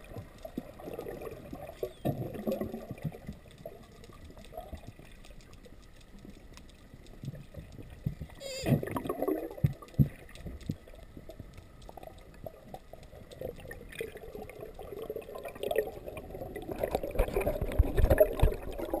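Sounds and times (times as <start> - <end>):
bubbling and splashing: 0.0 - 19.0
muffled underwater water movement: 0.0 - 19.0.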